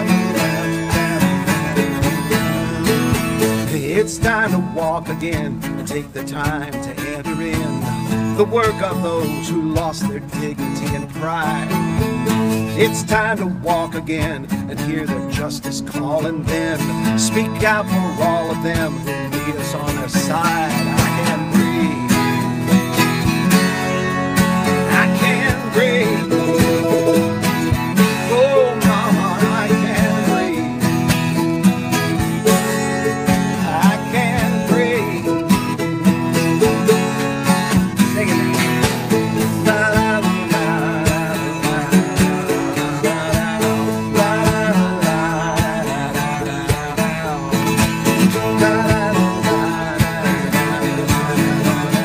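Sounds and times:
drum kit beat: 0:00.0 - 0:14.5, 0:16.4 - 0:52.0
plucked string melodic runs: 0:00.0 - 0:52.0
strummed acoustic guitar: 0:00.0 - 0:52.0.

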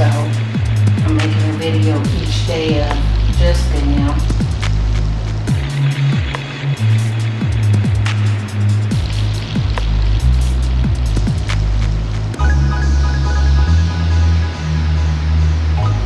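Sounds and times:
music with bass and drum beat: 0:00.0 - 0:16.0
high synth line: 0:12.4 - 0:16.0.

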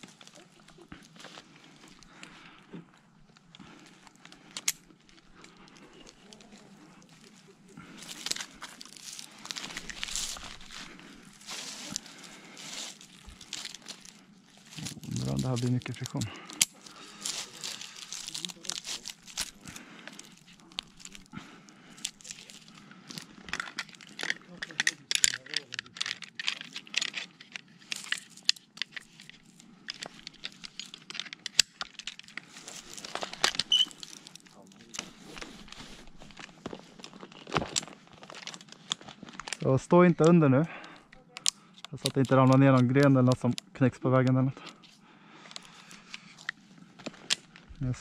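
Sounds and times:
rope scraping on bark: 0:06.0 - 0:21.4.

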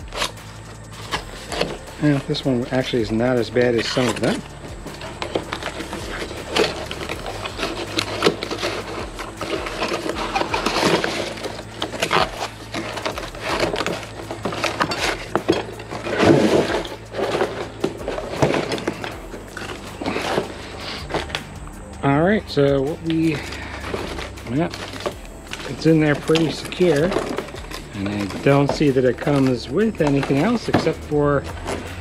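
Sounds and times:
cardboard packing rustling: 0:00.0 - 0:32.0.

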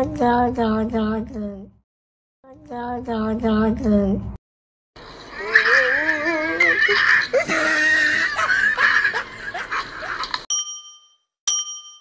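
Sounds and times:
high-pitched vocal cries: 0:05.3 - 0:08.5
bell-like dings: 0:10.5 - 0:12.0.

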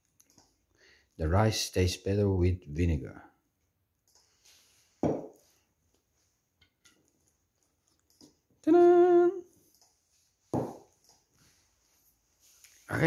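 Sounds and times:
man humming: 0:08.6 - 0:09.5.

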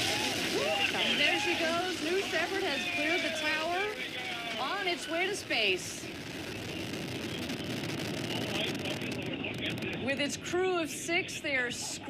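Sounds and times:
rocket engine roaring: 0:00.0 - 0:11.2.

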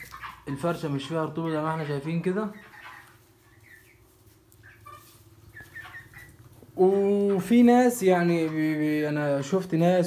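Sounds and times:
chickens peeping: 0:00.0 - 0:10.0.

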